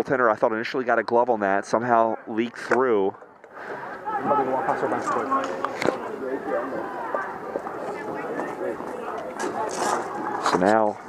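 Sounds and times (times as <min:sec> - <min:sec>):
chatter of voices: 0:01.8 - 0:11.0.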